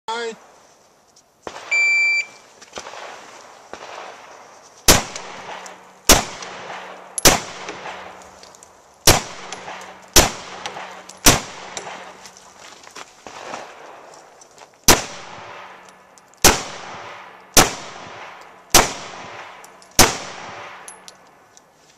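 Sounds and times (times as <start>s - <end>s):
shot timer beep: 1.7s - 2.4s
pistol shots: 4.9s - 8.2s, 9.0s - 12.2s, 14.9s - 15.8s, 16.4s - 21.0s.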